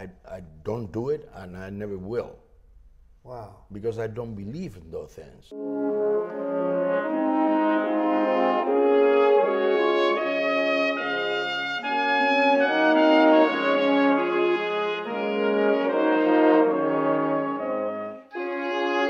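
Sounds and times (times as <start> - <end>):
brass section playing chords: 5.5 - 19.0.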